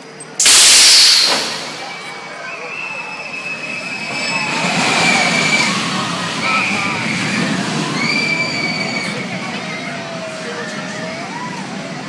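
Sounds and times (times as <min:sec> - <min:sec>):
roller coaster train rumbling: 0:00.0 - 0:12.0
riders screaming: 0:03.1 - 0:09.6.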